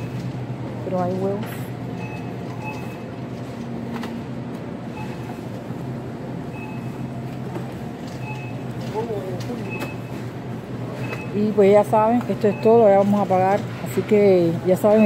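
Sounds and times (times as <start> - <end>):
refrigerator hum: 0.0 - 15.0
shopping cart rolling on tiles: 11.0 - 15.0.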